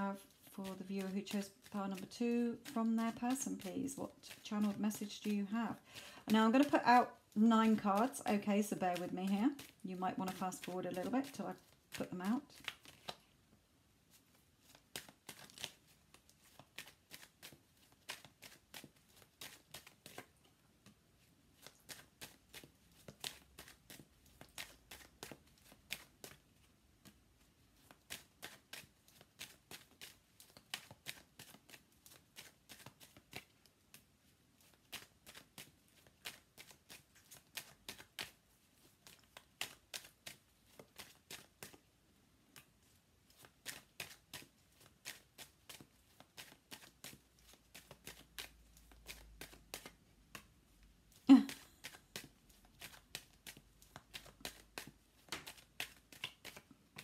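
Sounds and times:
cards being shuffled: 0:00.0 - 0:13.4, 0:14.1 - 0:41.9, 0:42.5 - 0:50.5, 0:51.2 - 0:57.0.

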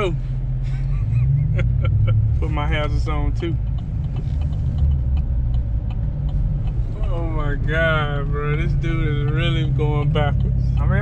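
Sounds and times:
truck engine running low hum: 0:00.0 - 0:11.0
sharp clicks: 0:03.4 - 0:07.1.

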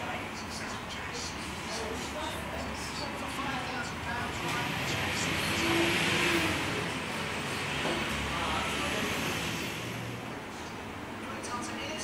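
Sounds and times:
faint voices: 0:00.0 - 0:12.0
vehicle passing: 0:03.3 - 0:10.7.

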